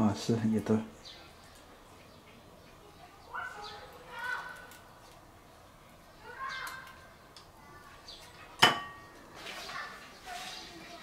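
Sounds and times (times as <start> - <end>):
utensil clinking on metal bowl: 8.6 - 9.1.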